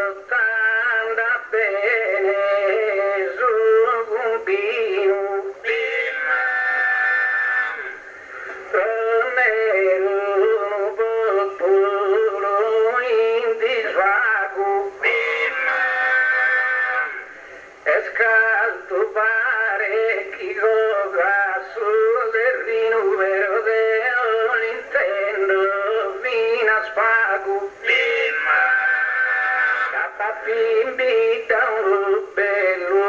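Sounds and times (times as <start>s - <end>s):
man singing: 0.0s - 33.0s.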